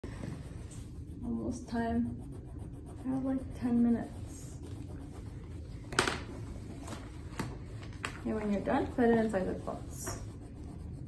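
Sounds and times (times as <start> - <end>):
crayons tapping on a table: 5.9 - 6.3, 7.3 - 8.2.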